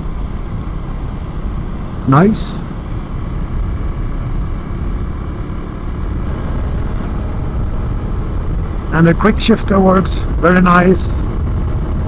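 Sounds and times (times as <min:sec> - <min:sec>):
motorcycle engine running: 0:00.0 - 0:12.0
wind noise on microphone: 0:06.0 - 0:12.0.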